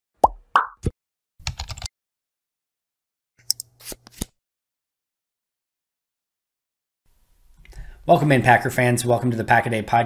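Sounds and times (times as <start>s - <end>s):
keyboard typing clicks: 1.4s - 1.9s.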